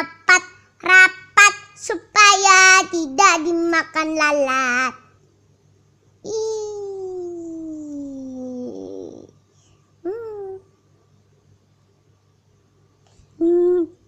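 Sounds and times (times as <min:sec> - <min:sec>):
young child's wordless voice: 0:00.0 - 0:05.1, 0:06.3 - 0:09.3.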